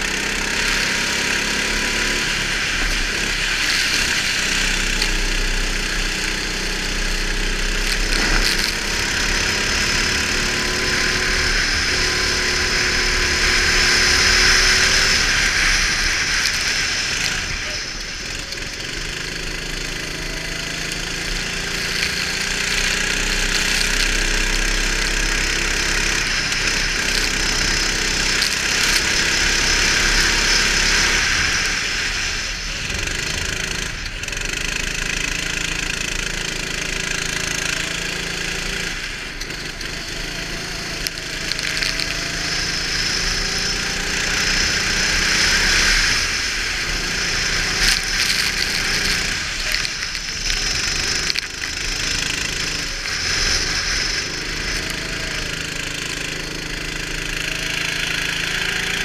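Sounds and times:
go-kart engine revving: 0.0s - 59.0s
wind and spray hiss: 0.0s - 59.0s.

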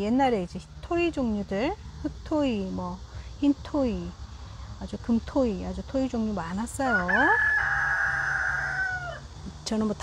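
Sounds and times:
rooster crowing: 6.8s - 9.3s.

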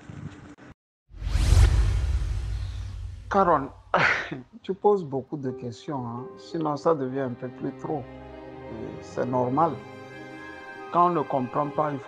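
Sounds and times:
whoosh with deep bass boom: 1.1s - 4.0s.

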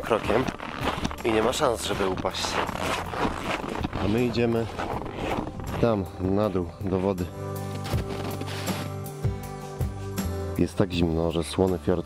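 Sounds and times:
background music with light beat: 0.0s - 12.0s.

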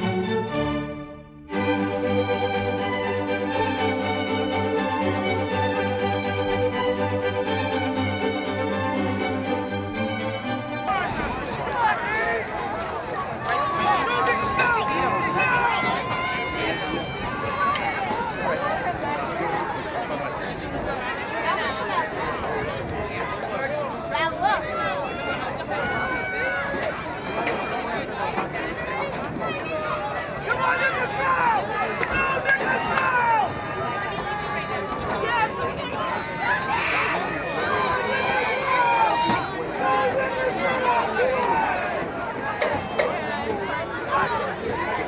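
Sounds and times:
crowd shouting and cheering: 0.0s - 45.0s.

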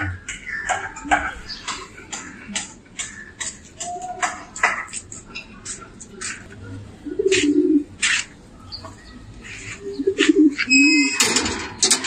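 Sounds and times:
pigeons cooing: 5.6s - 11.6s.

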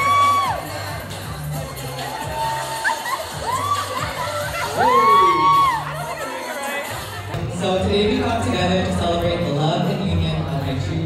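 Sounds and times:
high held woo shouts: 0.0s - 0.8s, 2.1s - 6.0s
crowd cheering and whooping: 0.0s - 7.2s
dance music with bass beat: 0.0s - 11.0s.

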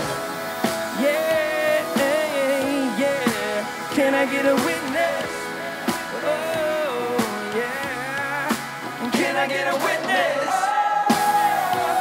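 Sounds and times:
live pop-rock band: 0.0s - 12.0s.

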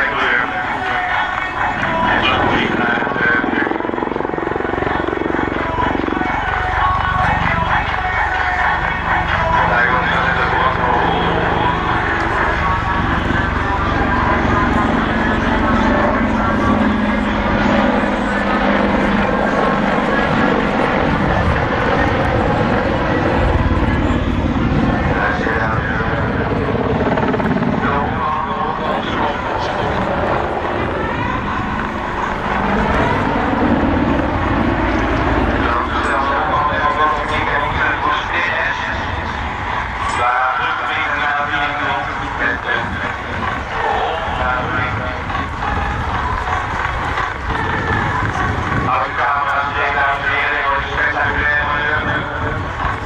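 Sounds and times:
helicopter rotor and engines: 0.0s - 53.0s.

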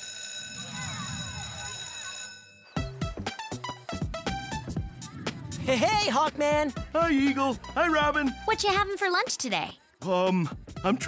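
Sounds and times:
electronic bell buzzer: 0.0s - 3.5s.

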